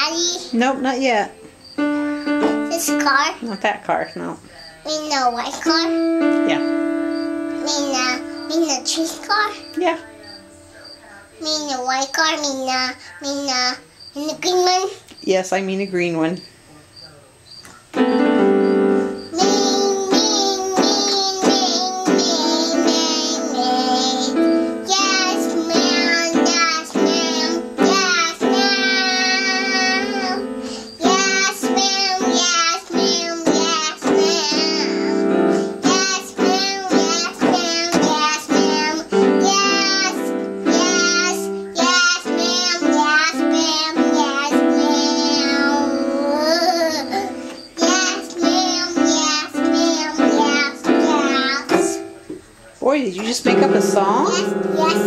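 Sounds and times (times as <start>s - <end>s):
toddler singing: 0.0s - 0.7s, 2.2s - 3.4s, 4.8s - 15.0s, 19.2s - 52.1s, 54.1s - 55.0s
electronic keyboard notes: 0.0s - 11.6s, 17.8s - 52.4s, 53.2s - 55.0s.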